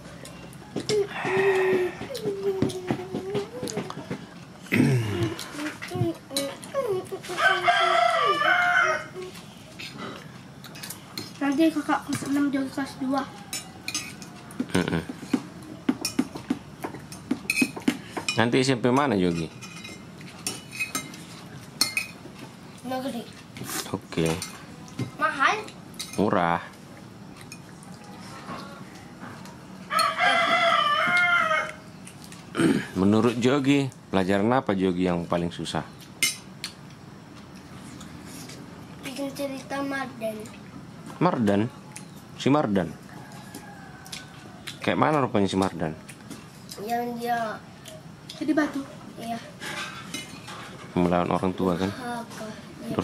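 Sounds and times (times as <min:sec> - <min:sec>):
rooster crowing: 0:00.6 - 0:02.4, 0:07.3 - 0:09.3, 0:13.1 - 0:14.7, 0:27.8 - 0:31.9, 0:43.0 - 0:44.9.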